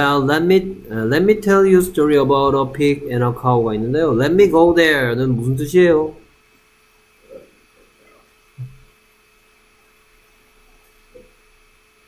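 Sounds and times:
steady electrical hum: 0.0s - 12.0s
faint low murmur: 7.2s - 9.0s.

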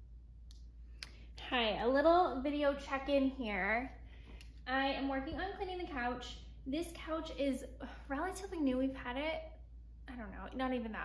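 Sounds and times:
woman speaking: 1.4s - 4.0s, 4.6s - 11.0s.

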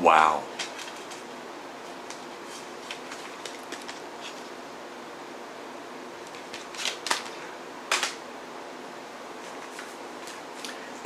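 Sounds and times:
room hum: 0.0s - 11.0s
packaging rustle: 0.5s - 4.5s, 6.2s - 8.2s
plastic cd cases clicking: 0.6s - 1.2s, 2.0s - 4.4s, 6.2s - 8.2s.

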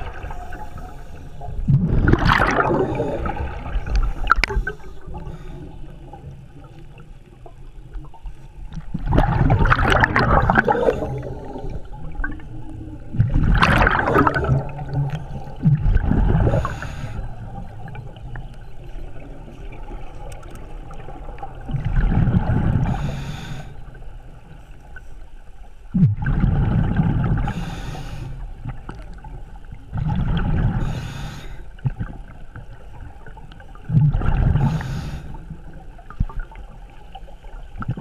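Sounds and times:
exhaled bubbles gurgling underwater: 0.0s - 38.0s
regulator inhalation hiss: 16.6s - 17.3s, 22.9s - 24.0s, 27.5s - 28.4s, 30.8s - 31.6s.

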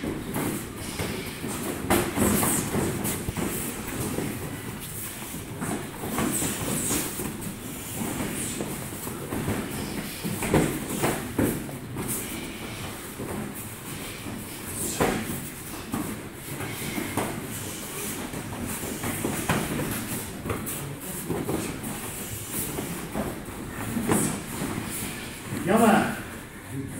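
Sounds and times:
bare feet on foam mats: 0.0s - 26.9s.

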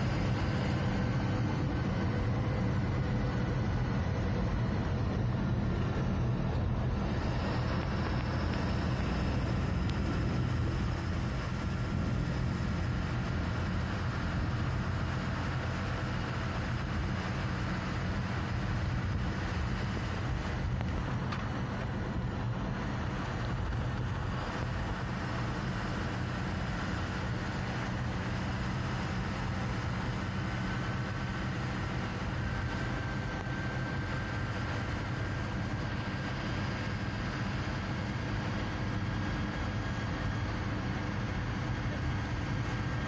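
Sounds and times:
road and wind noise: 0.0s - 43.0s
truck diesel engine droning: 0.0s - 43.0s.

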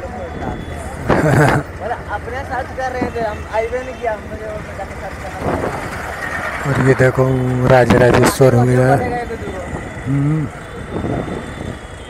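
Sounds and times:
motorcycle engines rumbling: 0.0s - 12.0s
man's voice: 6.6s - 10.7s.

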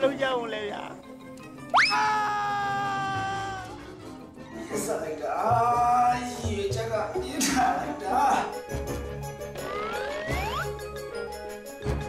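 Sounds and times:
man screaming: 1.8s - 3.8s.

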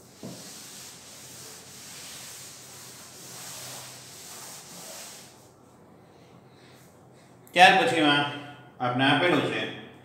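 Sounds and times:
cloth rubbing on chalkboard: 0.0s - 5.6s.

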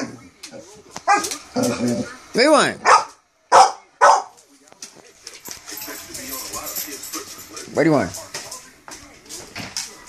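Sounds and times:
dog barking: 1.1s - 1.4s, 2.8s - 4.4s
dog claws clicking on tile floor: 4.4s - 10.0s.

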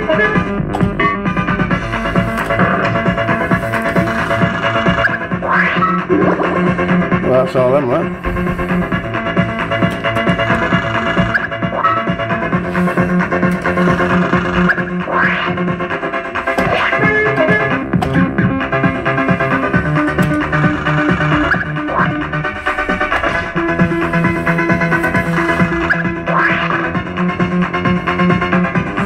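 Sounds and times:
fruit machine electronic music: 0.0s - 29.0s.

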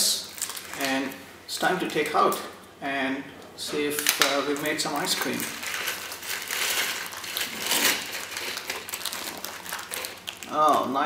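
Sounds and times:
plastic bag crinkling: 0.1s - 1.2s, 4.0s - 11.0s
crushed ice crunching: 4.5s - 10.9s.

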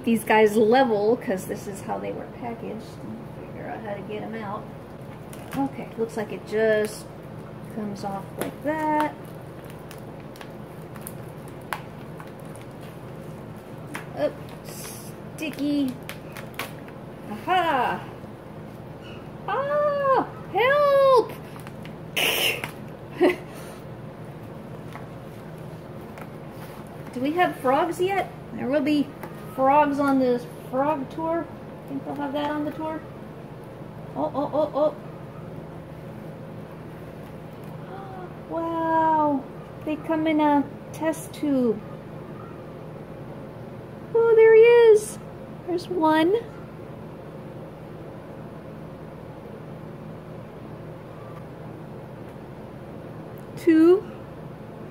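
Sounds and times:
low room hum: 0.0s - 54.9s
foil pouch crinkling: 8.6s - 17.0s.

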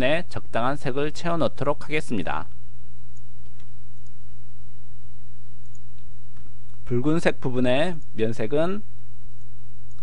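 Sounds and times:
steady low hum: 0.0s - 10.0s
computer mouse clicks: 5.6s - 6.8s, 9.4s - 10.0s.

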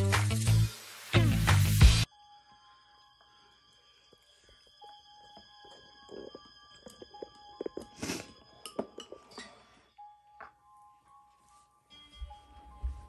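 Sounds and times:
faint background music: 0.8s - 13.0s.

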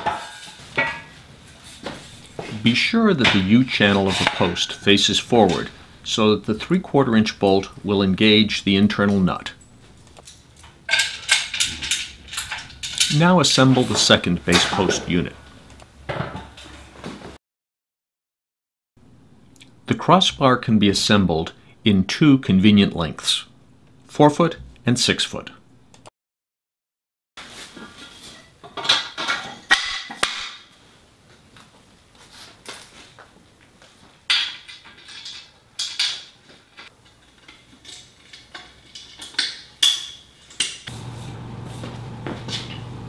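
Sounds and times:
metal bars clanking: 0.0s - 1.2s, 2.0s - 8.4s, 9.0s - 15.6s.

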